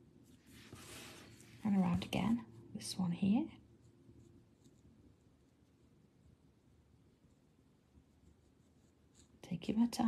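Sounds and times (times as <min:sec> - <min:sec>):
faint brush strokes on paper: 0:00.2 - 0:10.0.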